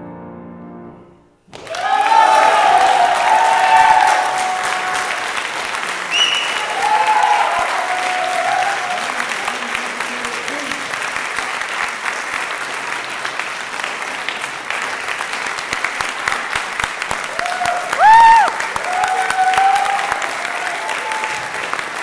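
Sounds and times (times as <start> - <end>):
piano chord: 0.0 - 1.4
audience applauding: 1.5 - 22.0.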